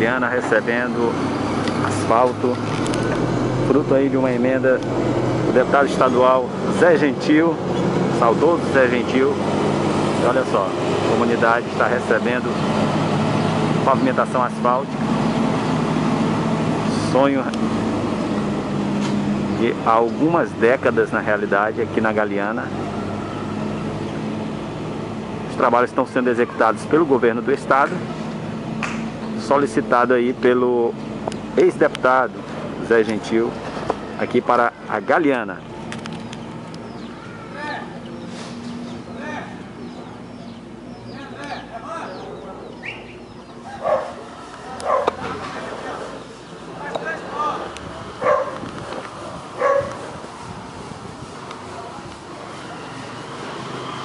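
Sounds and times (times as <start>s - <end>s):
outdoor background noise: 0.0s - 54.0s
road roller engine running: 0.0s - 54.0s
dog barking: 43.7s - 44.2s, 44.8s - 45.3s, 48.2s - 48.6s, 49.6s - 50.1s.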